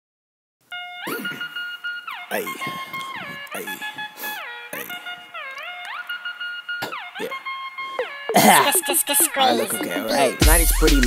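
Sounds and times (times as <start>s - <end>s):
electronic beeping lead tone: 8.0s - 10.9s
person shouting: 8.3s - 11.0s.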